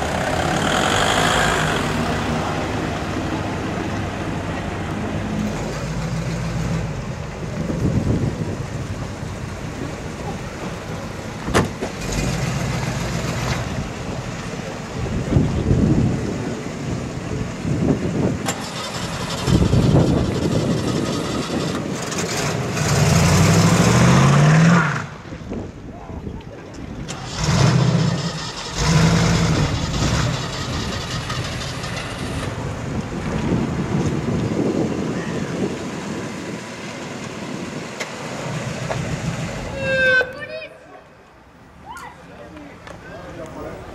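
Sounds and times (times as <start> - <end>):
car engine revving: 0.0 - 3.6, 18.5 - 25.1, 27.1 - 32.8.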